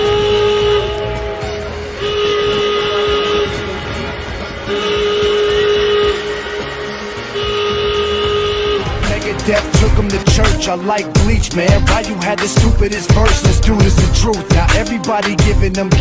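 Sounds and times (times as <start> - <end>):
whistle-like stadium horn blasts: 0.0 - 9.3
music: 0.0 - 16.0.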